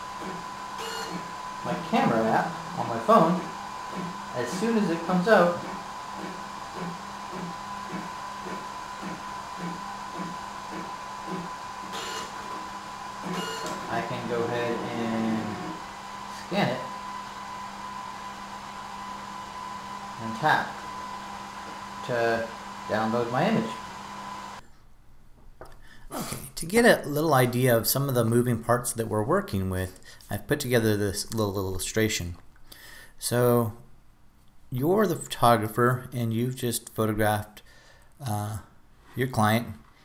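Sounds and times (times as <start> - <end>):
faint high electrical tone: 0.0 - 24.6
inkjet printer humming and whining: 0.0 - 24.6
printer rasp: 0.0 - 24.6.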